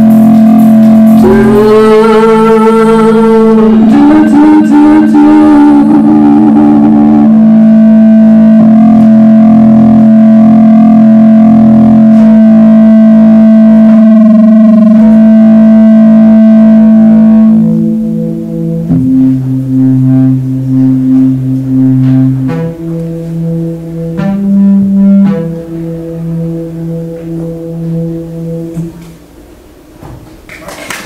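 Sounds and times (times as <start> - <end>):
droning electric guitar: 0.0 - 29.3
synthesizer-like sustained pitches: 0.0 - 29.7.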